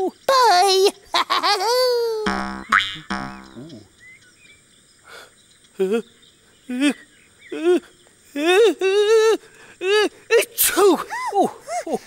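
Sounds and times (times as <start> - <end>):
cartoon boing sound effect: 2.3 - 3.8.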